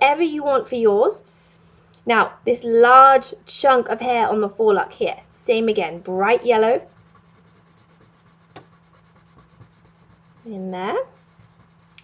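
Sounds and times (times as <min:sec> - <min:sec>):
pencil scratching on paper: 0:05.5 - 0:12.0.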